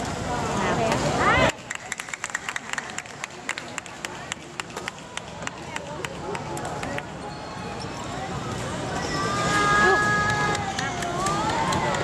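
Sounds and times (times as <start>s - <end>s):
general chatter: 0.0s - 12.0s.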